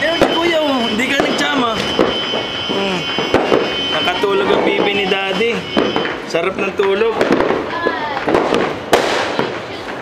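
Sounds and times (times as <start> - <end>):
voices: 0.0 - 8.8
firecrackers cracking: 0.0 - 10.0.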